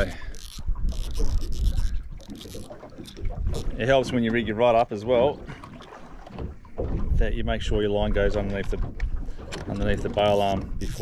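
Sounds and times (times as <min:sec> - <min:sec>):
fishing reel clicking: 0:00.0 - 0:03.7, 0:10.3 - 0:11.0.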